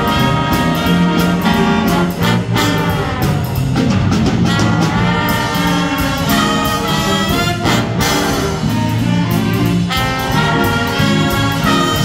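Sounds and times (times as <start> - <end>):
jazz big band playing blues: 0.0 - 12.0.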